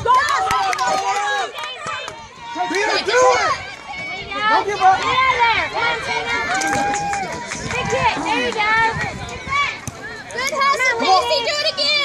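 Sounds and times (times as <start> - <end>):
spectators and players shouting: 0.0 - 12.0.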